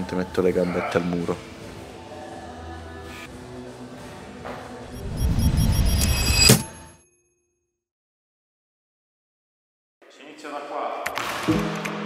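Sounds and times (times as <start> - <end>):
soft background music: 0.0 - 5.0.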